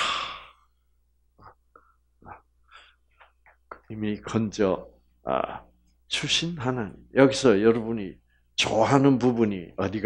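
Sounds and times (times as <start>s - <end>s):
man's breathy exhale: 0.0s - 0.7s.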